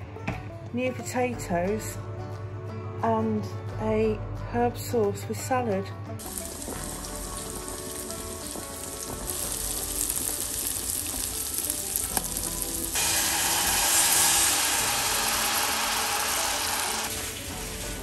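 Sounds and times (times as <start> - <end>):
liquid sizzling in hot pan: 6.2 - 18.0
pot of potatoes boiling: 6.2 - 18.0.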